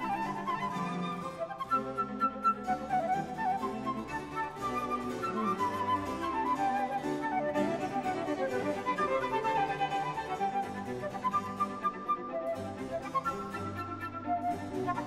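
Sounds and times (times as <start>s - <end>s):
instrumental background music: 0.0s - 15.0s.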